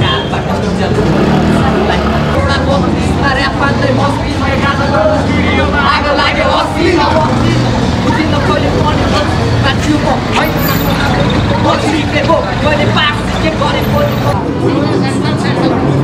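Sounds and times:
men shouting and talking: 0:00.0 - 0:16.0
vehicle engine rumble: 0:00.0 - 0:16.0.

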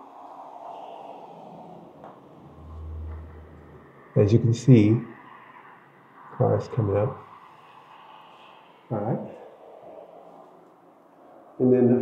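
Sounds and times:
faint car passing: 0:00.0 - 0:12.0.

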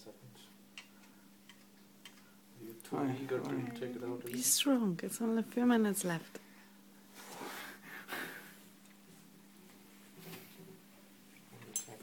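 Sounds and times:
faint steady hum: 0:00.0 - 0:12.0
person breathing hard: 0:07.3 - 0:08.7.

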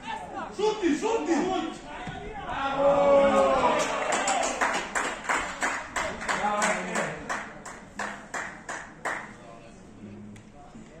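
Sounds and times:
hands clapping in rhythm: 0:03.8 - 0:09.3.

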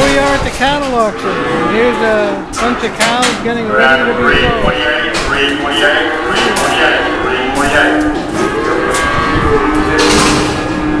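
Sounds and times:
din of voices: 0:00.0 - 0:10.6
cattle mooing: 0:00.7 - 0:11.0.

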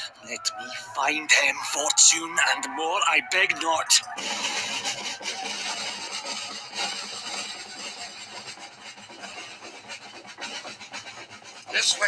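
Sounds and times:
rasping battle clatter: 0:01.7 - 0:12.0.

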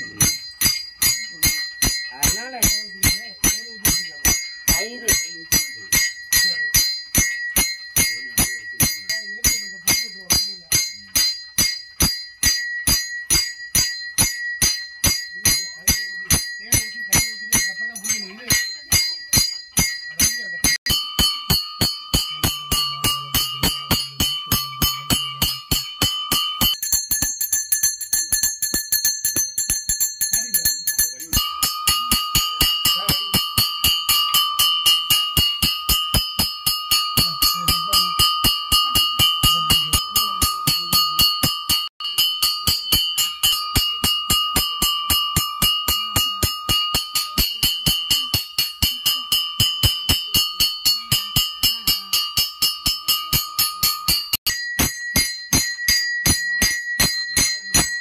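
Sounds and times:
bell ringing: 0:00.0 - 0:58.0.

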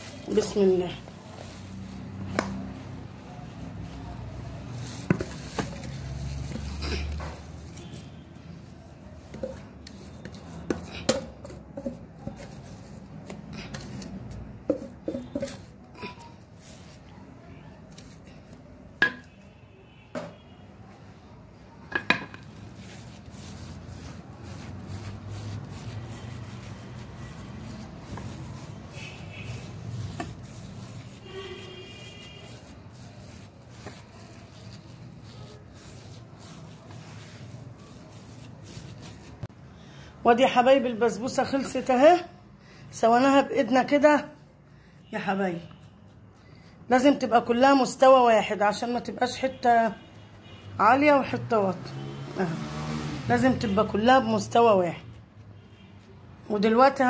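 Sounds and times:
knocks and scrapes on metal tray: 0:13.7 - 0:15.8, 0:21.9 - 0:22.6
soft rubbing: 0:22.4 - 0:39.5.

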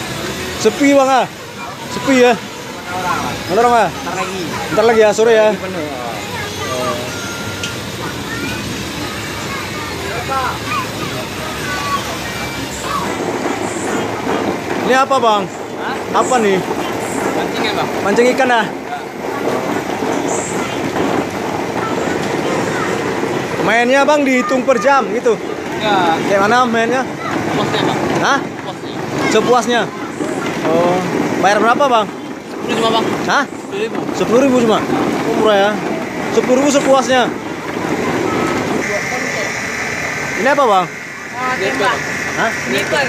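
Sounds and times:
busy outdoor background noise: 0:00.0 - 0:43.0
steady high-pitched tone: 0:38.3 - 0:43.0.

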